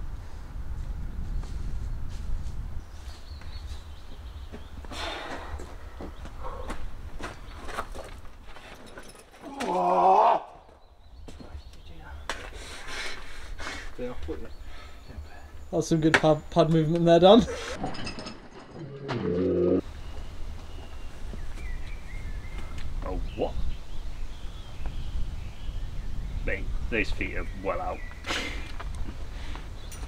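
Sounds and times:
climber shouting: 0:09.4 - 0:10.7.

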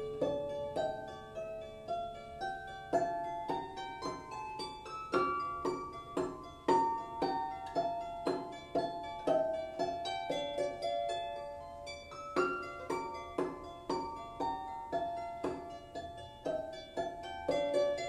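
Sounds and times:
harp plucked melody: 0:00.0 - 0:18.0.

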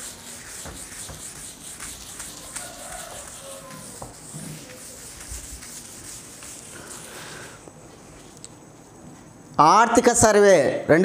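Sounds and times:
whiteboard being wiped: 0:00.0 - 0:08.4.

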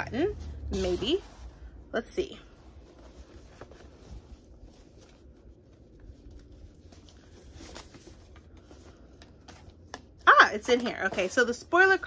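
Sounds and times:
paper and packaging rustling: 0:02.7 - 0:11.7.

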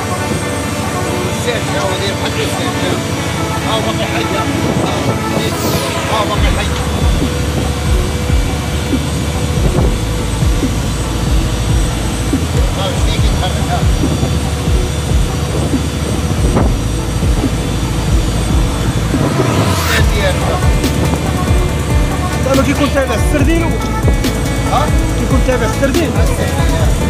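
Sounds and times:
boat engine running: 0:00.0 - 0:27.0.

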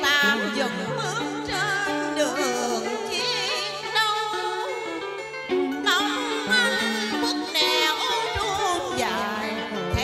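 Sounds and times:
woman singing into a microphone: 0:00.0 - 0:10.0.

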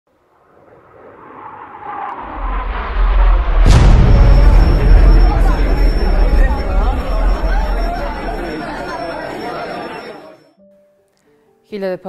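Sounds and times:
rushing whoosh with steady tone: 0:00.1 - 0:09.1.

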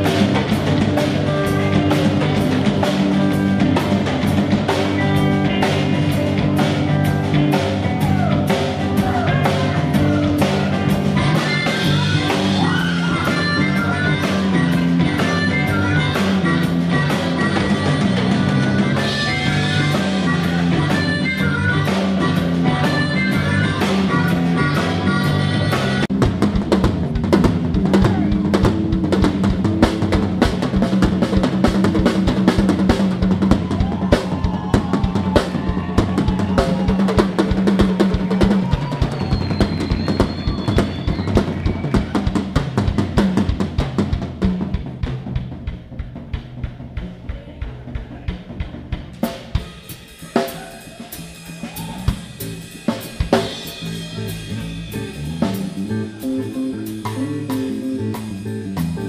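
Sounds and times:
drum kit rolls and fills: 0:00.0 - 0:59.0
sustained bass and guitar notes: 0:00.0 - 0:59.0.

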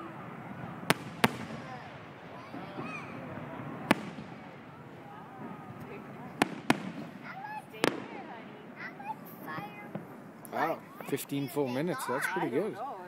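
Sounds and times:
fireworks bangs: 0:00.0 - 0:11.2.

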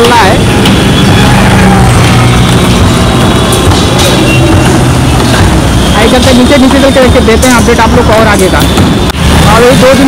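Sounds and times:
road noise: 0:00.0 - 0:10.0
vehicle engines humming: 0:00.0 - 0:10.0.

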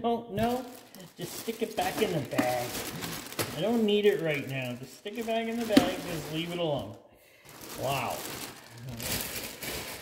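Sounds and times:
plastic bag crinkling: 0:00.4 - 0:10.0.

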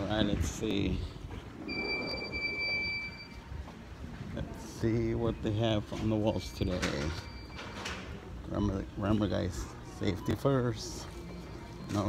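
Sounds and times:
low background noise: 0:00.0 - 0:12.0
high-pitched electronic beep: 0:01.7 - 0:03.4.

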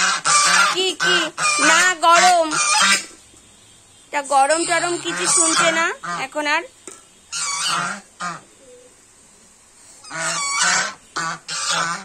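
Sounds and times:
geese honking: 0:00.0 - 0:03.2, 0:04.1 - 0:08.5, 0:10.0 - 0:12.0.

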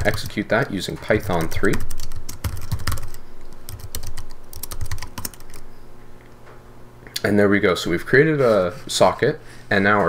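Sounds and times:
typing on computer keyboard: 0:00.0 - 0:05.6.

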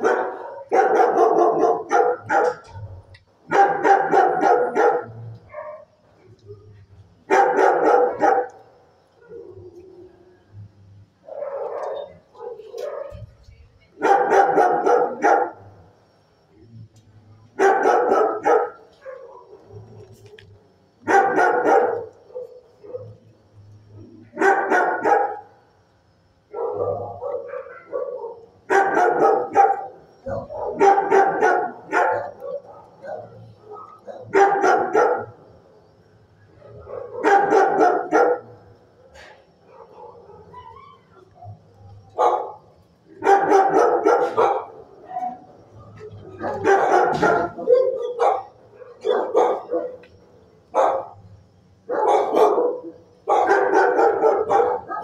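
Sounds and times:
dogs barking: 0:00.0 - 0:10.2, 0:11.2 - 0:13.3, 0:14.0 - 0:15.9, 0:17.6 - 0:23.3, 0:24.0 - 0:25.7, 0:26.4 - 0:35.7, 0:36.6 - 0:55.0.

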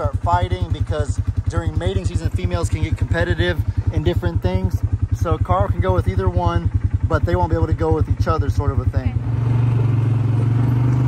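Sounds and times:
atv engine accelerating: 0:00.0 - 0:11.0.

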